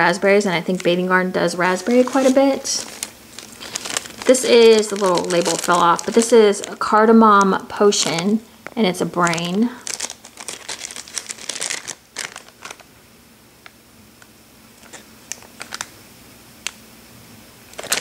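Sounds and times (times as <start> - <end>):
plastic bag crinkling: 0.7 - 12.9, 14.8 - 16.0, 17.7 - 18.0.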